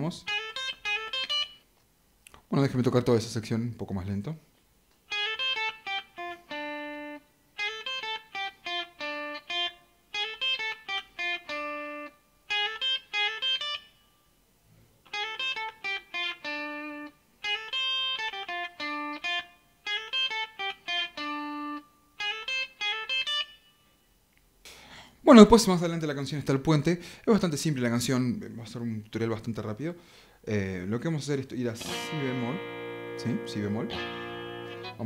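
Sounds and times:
electric guitar lead lick: 0.0 - 1.6, 5.1 - 13.9, 15.1 - 23.6, 31.8 - 35.0.

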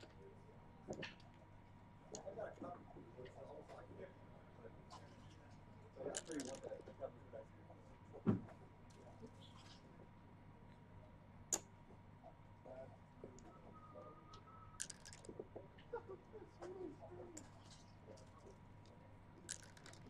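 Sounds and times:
dice clattering on board: 6.1 - 6.7, 14.8 - 15.4, 19.4 - 20.0
checkers clicking: 14.8 - 15.3, 19.4 - 20.0.

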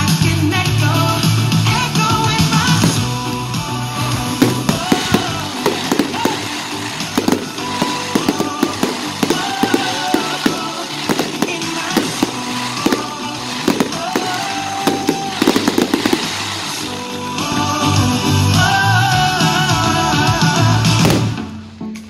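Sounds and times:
music: 0.0 - 22.0
firework shells bursting: 2.4 - 17.7, 21.0 - 21.5.

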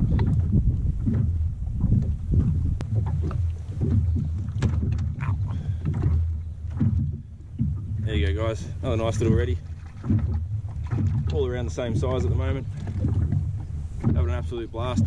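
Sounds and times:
wind rumbling on microphone: 0.0 - 15.0.

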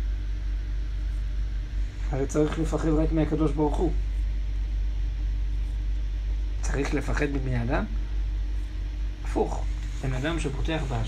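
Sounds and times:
low-pitched background hum: 0.0 - 11.0.

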